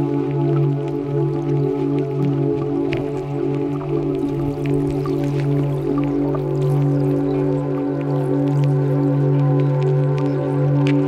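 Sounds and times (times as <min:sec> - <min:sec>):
low synthesizer drone chord: 0:00.0 - 0:11.0.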